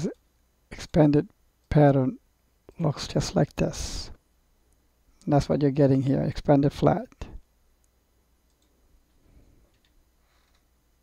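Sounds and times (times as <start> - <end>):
computer mouse clicks: 7.8 - 8.8, 9.7 - 10.7.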